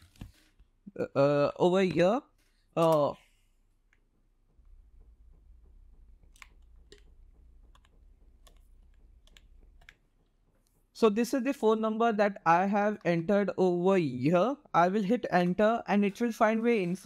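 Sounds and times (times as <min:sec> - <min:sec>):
computer keyboard keystrokes: 0:06.3 - 0:07.1, 0:07.7 - 0:10.0.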